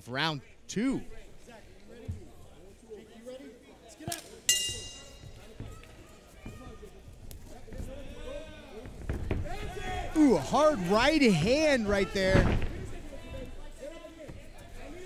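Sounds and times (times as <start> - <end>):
crowd calling out: 9.4 - 12.7.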